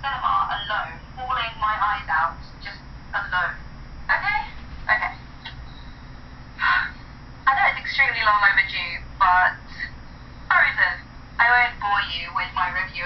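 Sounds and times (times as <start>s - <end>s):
woman talking through phone speaker: 0.0s - 5.2s, 7.5s - 9.9s, 10.5s - 13.0s.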